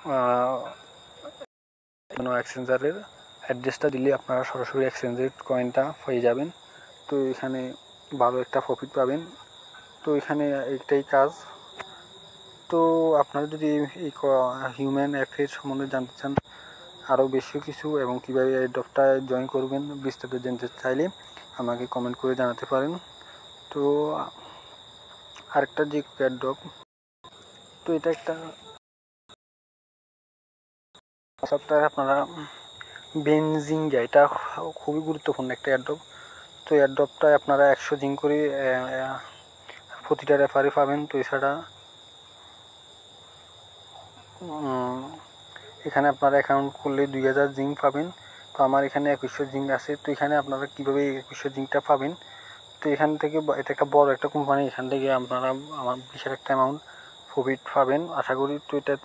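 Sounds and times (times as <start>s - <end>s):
man talking: 0.0s - 1.4s, 2.1s - 9.4s, 10.0s - 11.6s, 12.7s - 23.0s, 23.7s - 24.4s, 25.4s - 26.8s, 27.9s - 28.6s, 31.4s - 36.0s, 36.7s - 41.7s, 44.4s - 45.2s, 45.8s - 52.2s, 52.8s - 59.0s.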